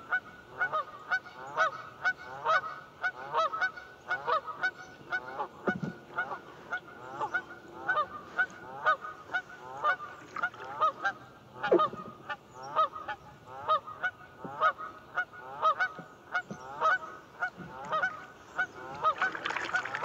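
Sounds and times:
geese honking: 0.1s - 20.0s.

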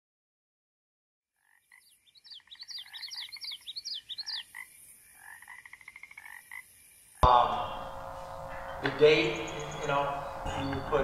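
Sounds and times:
frogs calling in chorus: 1.4s - 11.0s
steady high hiss: 6.7s - 11.0s.

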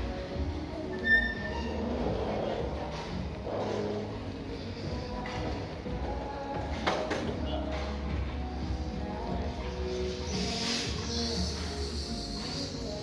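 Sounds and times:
background music in a store: 0.0s - 13.0s.

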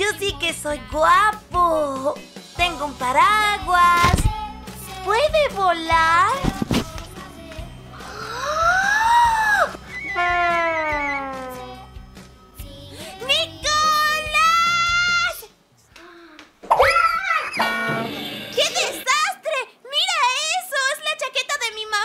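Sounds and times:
child's voice: 0.0s - 4.3s, 4.9s - 6.5s, 13.0s - 17.6s, 18.6s - 22.0s
children's background music: 0.0s - 15.5s, 16.8s - 19.2s.

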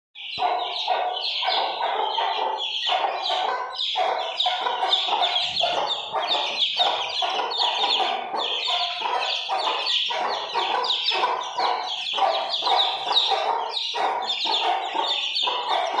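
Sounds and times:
chicks peeping: 0.2s - 16.0s.

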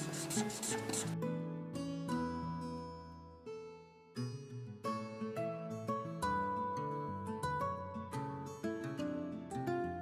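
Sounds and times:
marker scratching on paper: 0.0s - 1.2s.

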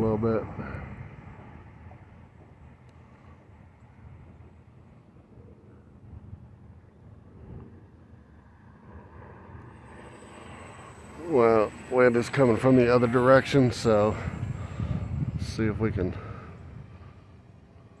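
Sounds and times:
low outdoor rumble: 0.0s - 18.0s
rc plane motor drone: 7.4s - 18.0s.

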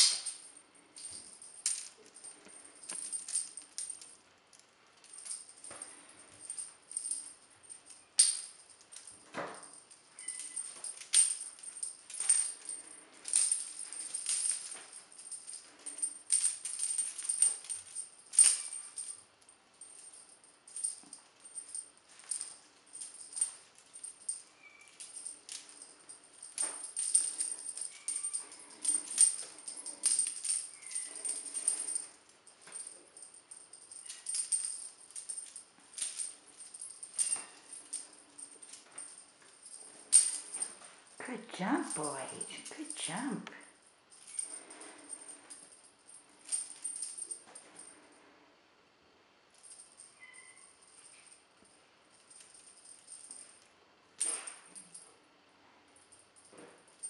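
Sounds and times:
cat toy jingling: 5.0s - 43.2s, 44.1s - 45.8s, 49.6s - 51.2s.

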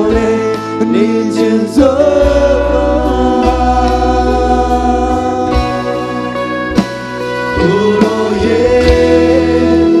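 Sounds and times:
person singing: 0.0s - 6.7s, 7.3s - 10.0s
acoustic guitar: 0.0s - 10.0s
drums: 0.0s - 10.0s
keyboard: 0.0s - 10.0s.

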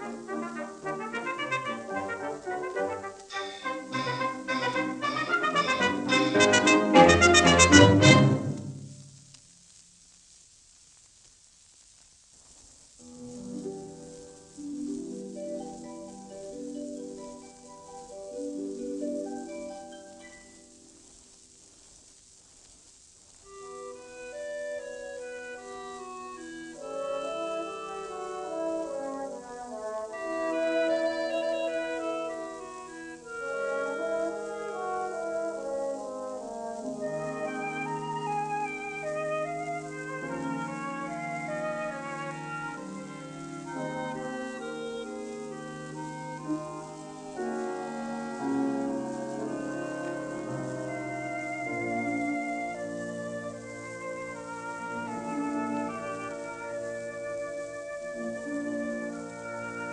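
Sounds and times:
small orchestra playing held notes: 0.0s - 9.0s, 24.0s - 59.9s
faint recording hiss: 0.0s - 59.9s.

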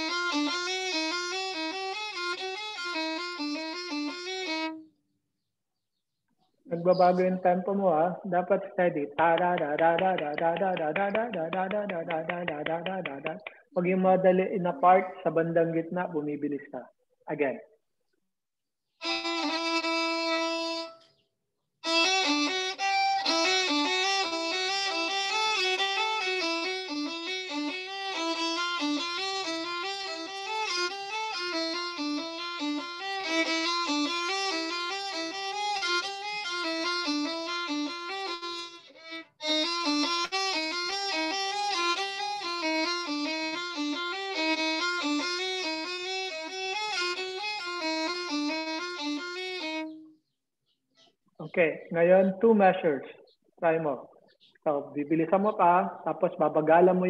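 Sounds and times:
solo violin playing runs: 0.0s - 4.9s, 19.0s - 21.0s, 21.8s - 50.1s.

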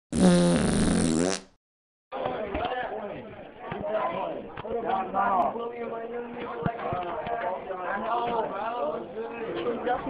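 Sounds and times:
fart sound effect: 0.1s - 1.6s.

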